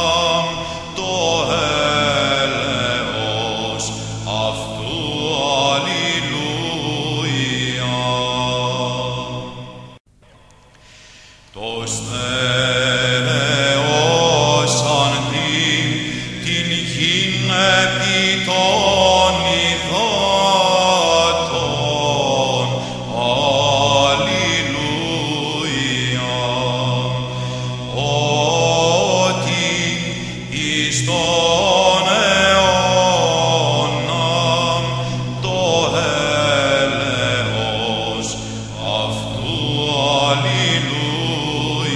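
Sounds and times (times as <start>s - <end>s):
solo chant vocal line: 0.0s - 10.0s, 11.5s - 41.9s.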